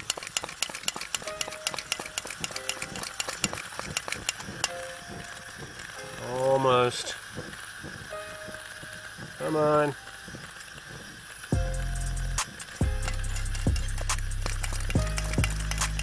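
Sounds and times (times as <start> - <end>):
camping stove hissing: 0.0 - 16.0
flame crackling ticks: 0.0 - 16.0.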